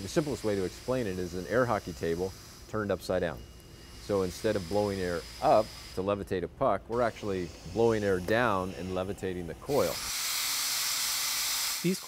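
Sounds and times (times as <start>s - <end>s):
compressed air hissing: 0.0s - 6.2s, 6.9s - 12.0s.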